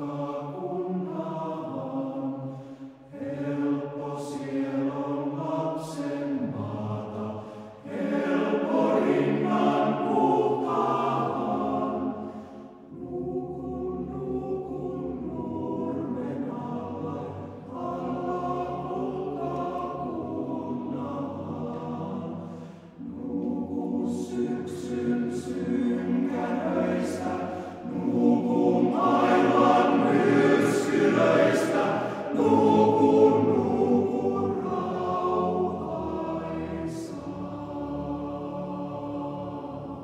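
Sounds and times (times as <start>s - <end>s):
male voice choir singing: 0.0s - 12.3s, 12.9s - 40.0s.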